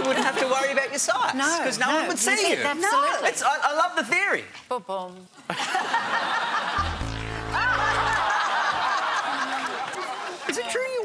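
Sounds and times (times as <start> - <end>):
audience laughing: 5.5 - 10.6
harsh game show buzzer: 6.8 - 8.5.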